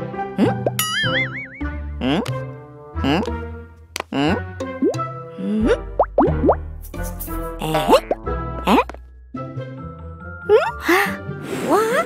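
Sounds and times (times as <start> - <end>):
bouncy cartoon music: 0.3 - 11.2
comic plopping sound effects: 5.6 - 6.6, 7.6 - 8.9.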